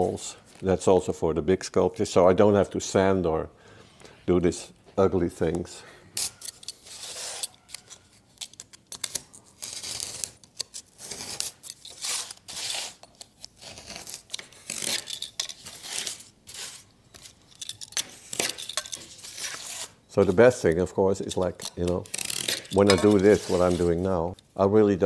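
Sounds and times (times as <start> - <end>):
knife scraping cardboard: 6.3 - 16.8, 19.1 - 20.0, 21.3 - 24.0.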